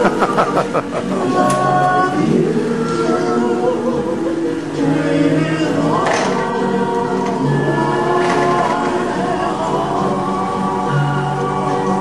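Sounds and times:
group of voices singing held notes: 0.0 - 12.0.

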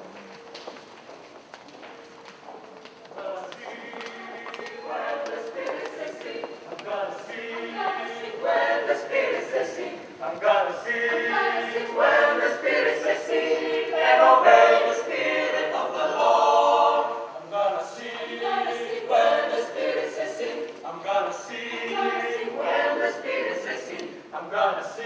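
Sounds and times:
group of people singing: 3.2 - 25.0.

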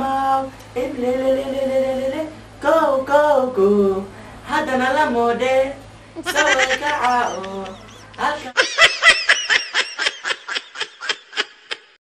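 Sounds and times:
high-pitched bleating laugh effect: 6.2 - 8.3
person speaking: 6.2 - 8.6.

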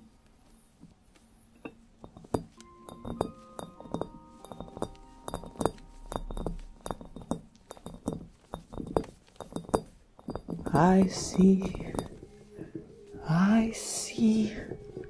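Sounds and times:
fingernails tapping glass ball: 0.8 - 15.0.

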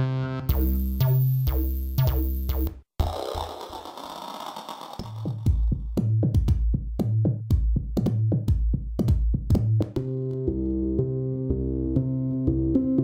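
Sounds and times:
distorted synth lead: 0.0 - 5.4.

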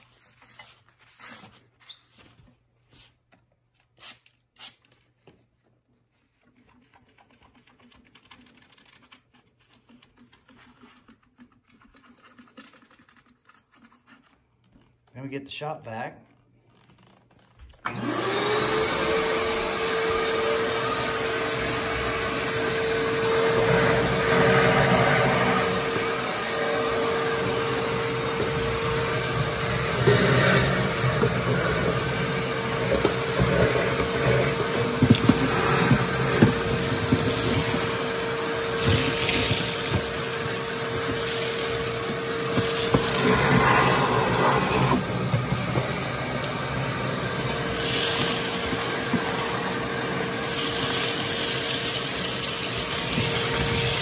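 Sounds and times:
vacuum motor whine: 17.8 - 54.0.

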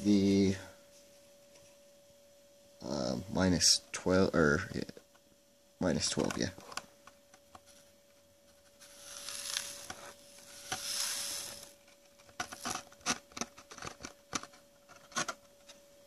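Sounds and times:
grains sliding hiss: 8.7 - 11.8.

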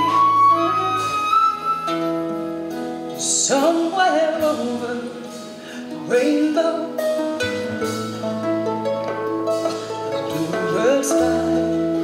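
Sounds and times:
flute playing long notes: 0.0 - 2.3
harp strings and upright bass: 0.0 - 12.0.

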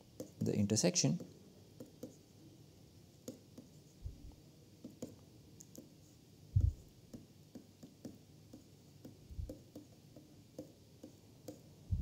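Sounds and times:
stylus tapping on tablet screen: 0.2 - 0.6, 1.2 - 2.2, 3.2 - 6.0, 6.6 - 11.7
dull low thump: 6.6 - 6.8.

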